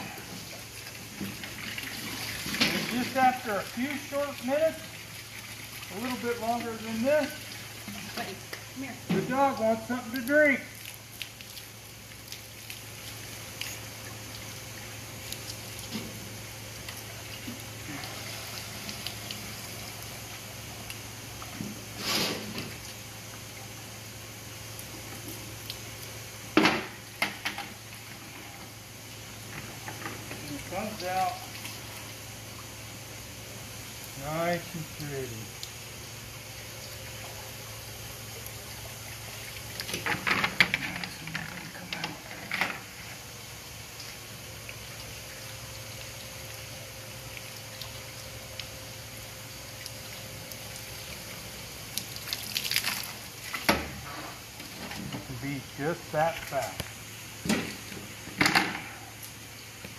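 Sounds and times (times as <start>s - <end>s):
water running from hose: 0.0s - 59.9s
plastic buckets clattering: 39.9s - 42.9s.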